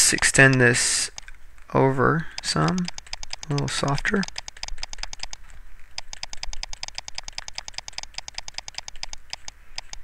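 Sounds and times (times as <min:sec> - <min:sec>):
stylus tip clicking on tablet: 0:02.4 - 0:05.4, 0:06.0 - 0:10.0.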